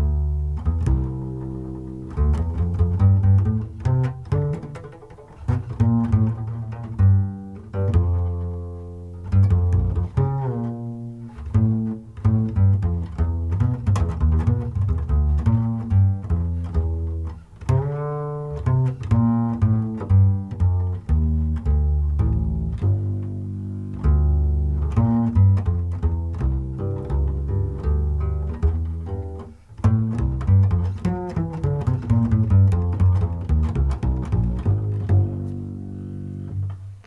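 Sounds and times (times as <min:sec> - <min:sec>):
pizzicato double bass: 0:00.0 - 0:37.0.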